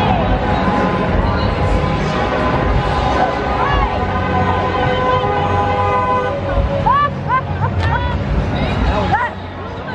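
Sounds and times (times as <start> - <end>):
crowd voices calling: 0.0 - 9.9.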